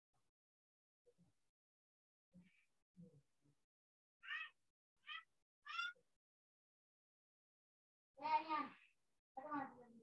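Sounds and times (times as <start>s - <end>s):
cat meowing: 4.2s - 6.0s.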